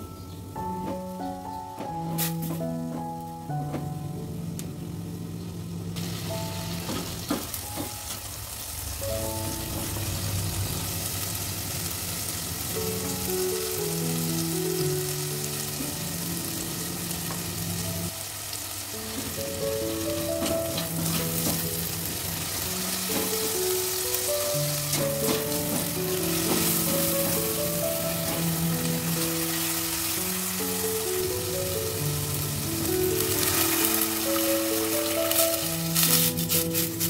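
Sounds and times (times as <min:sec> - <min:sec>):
soft background music: 0:00.0 - 0:37.0
spice paste sizzling in oil: 0:06.0 - 0:37.0.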